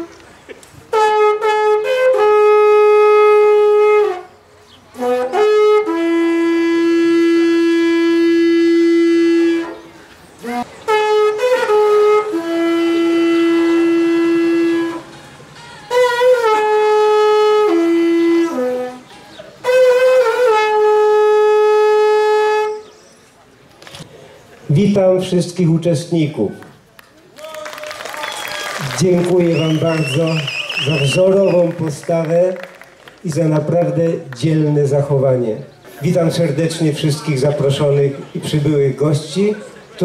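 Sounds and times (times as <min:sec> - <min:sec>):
wooden horn blowing: 0:00.0 - 0:23.4, 0:29.2 - 0:31.8.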